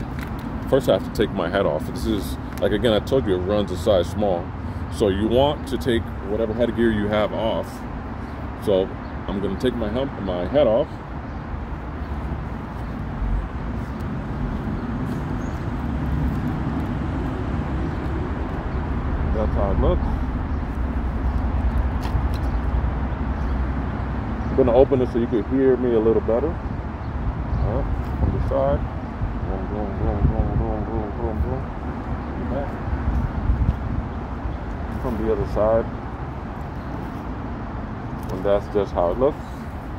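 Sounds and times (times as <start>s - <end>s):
wind rumble on microphone: 26.5s - 35.7s.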